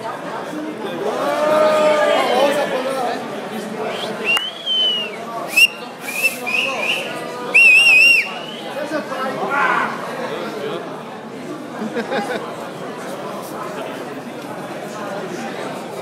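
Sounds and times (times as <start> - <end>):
crowd chatter: 0.0 - 16.0
people whistling: 3.9 - 8.8.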